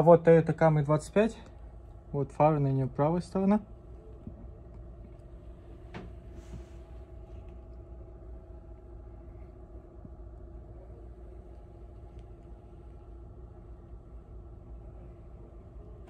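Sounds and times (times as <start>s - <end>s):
faint droning tone: 0.0s - 16.0s
low mechanical hum: 0.0s - 16.0s.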